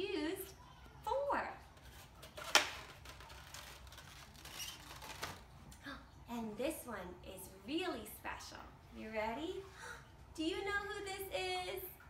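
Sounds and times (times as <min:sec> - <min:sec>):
plastic egg carton clicks and rustles: 0:01.8 - 0:05.5.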